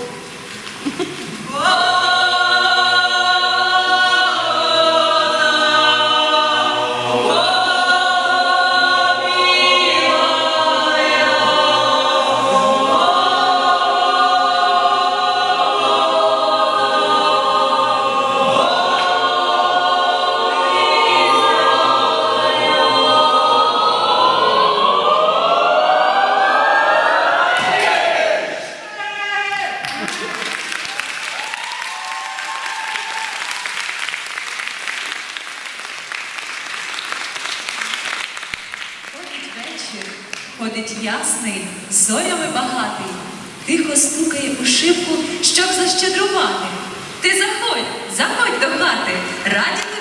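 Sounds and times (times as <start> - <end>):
choir singing a cappella: 1.4 - 28.9, 41.2 - 50.0.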